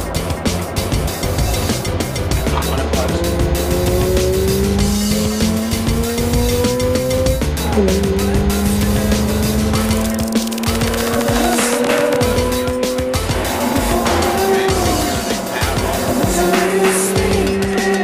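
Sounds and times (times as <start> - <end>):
rotary engine accelerating: 0.0 - 18.0.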